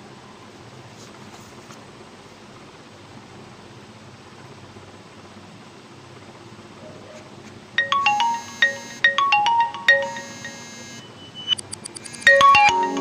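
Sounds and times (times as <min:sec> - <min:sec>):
marimba-like phone ringtone: 0:07.8 - 0:13.0.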